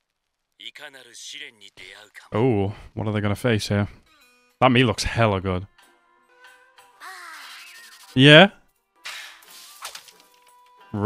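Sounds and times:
faint soundtrack music: 0.0s - 11.0s
short crack: 9.0s - 10.6s.

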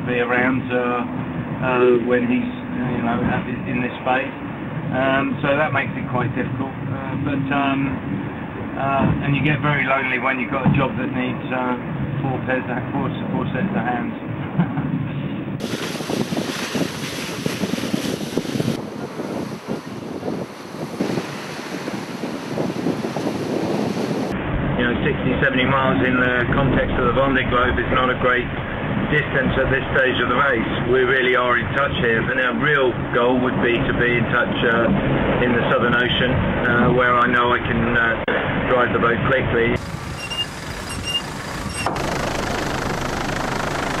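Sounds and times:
wind on microphone: 13.1s - 32.3s, 39.4s - 44.0s
rushing water: 15.6s - 24.4s
helicopter engine: 39.8s - 44.0s.

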